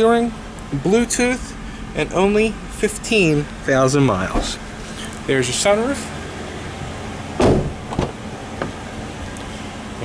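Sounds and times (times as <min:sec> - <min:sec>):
steady low hum: 0:00.0 - 0:10.0
car door thump: 0:04.2 - 0:04.7, 0:07.4 - 0:08.8
car door click: 0:07.4 - 0:08.8.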